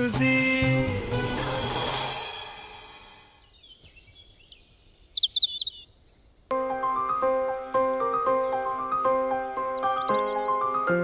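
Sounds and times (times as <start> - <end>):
background music: 0.0 - 3.3, 6.5 - 11.0
birds chirping: 3.3 - 6.5, 7.1 - 11.0.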